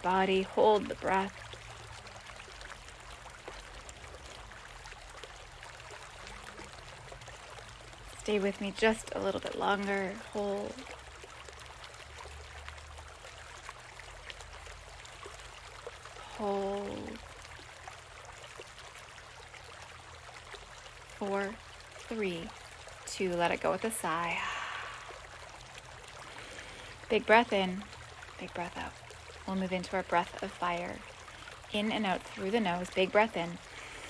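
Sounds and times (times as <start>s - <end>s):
low water rumble: 0.0s - 34.0s.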